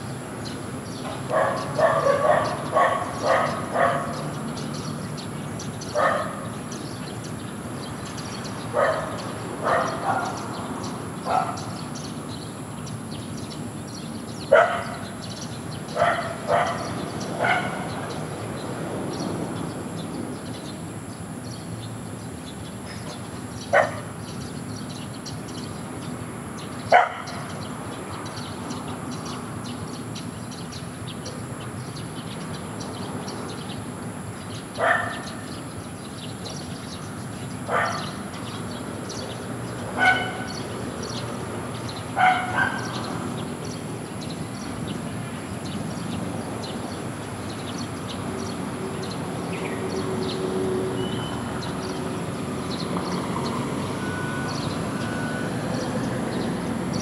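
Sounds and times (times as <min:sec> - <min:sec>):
dog barking: 0:01.2 - 0:04.3, 0:05.9 - 0:06.6, 0:08.7 - 0:10.4, 0:11.2 - 0:11.8, 0:14.5 - 0:15.1, 0:15.9 - 0:18.1, 0:23.7 - 0:24.1, 0:26.9 - 0:27.6, 0:34.8 - 0:35.4, 0:37.7 - 0:38.2, 0:40.0 - 0:40.6, 0:42.1 - 0:43.1.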